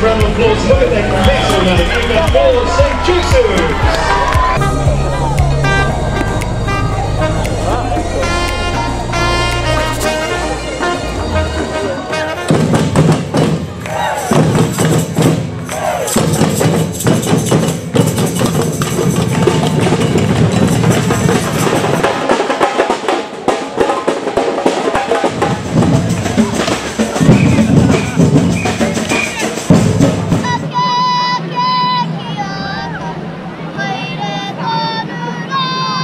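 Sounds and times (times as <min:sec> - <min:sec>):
drums beaten with mallets: 0:00.0 - 0:08.8, 0:12.5 - 0:30.6
music with held pitched notes: 0:00.0 - 0:12.4
crowd: 0:00.0 - 0:36.0.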